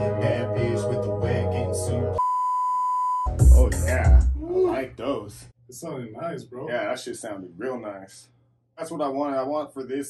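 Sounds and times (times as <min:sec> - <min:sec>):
hip-hop beat with heavy bass: 0:00.0 - 0:02.2, 0:03.3 - 0:04.8
rapped vocal: 0:00.0 - 0:02.2, 0:03.3 - 0:05.4
censor bleep: 0:02.2 - 0:03.4.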